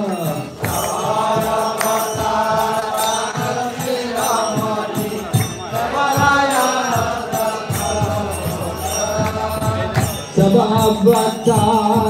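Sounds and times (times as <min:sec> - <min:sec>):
hand cymbals: 0:00.0 - 0:12.0
low drum beats: 0:04.6 - 0:12.0.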